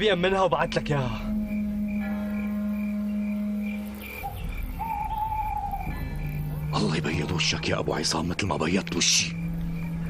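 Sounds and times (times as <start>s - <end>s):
low synthesizer drone: 0.0s - 10.0s.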